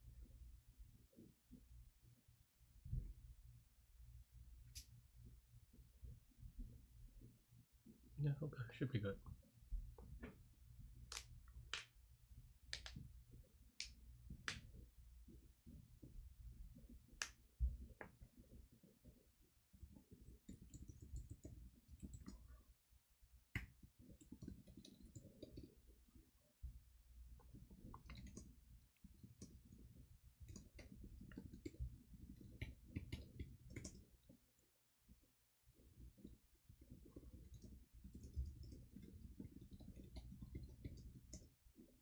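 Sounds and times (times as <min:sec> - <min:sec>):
faint keyboard typing: 0:19.8 - 0:22.7, 0:23.5 - 0:26.4, 0:27.3 - 0:34.4, 0:35.8 - 0:42.0.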